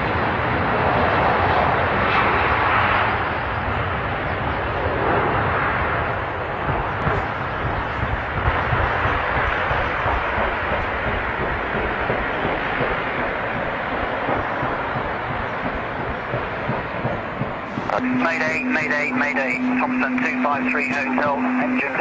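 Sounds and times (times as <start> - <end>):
jet engines roaring: 0.0 - 22.0
engine popping: 6.6 - 22.0.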